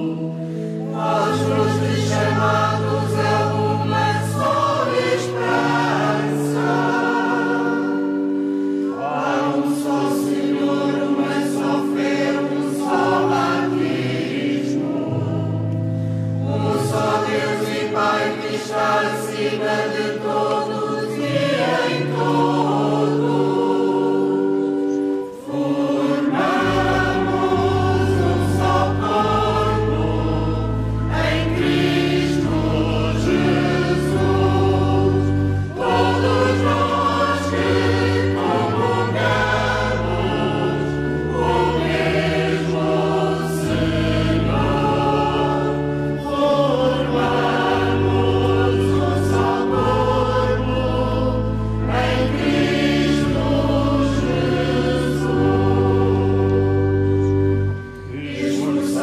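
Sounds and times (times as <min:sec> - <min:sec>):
choir singing a hymn: 0:00.0 - 0:59.0
low held accompanying notes: 0:00.0 - 0:59.0.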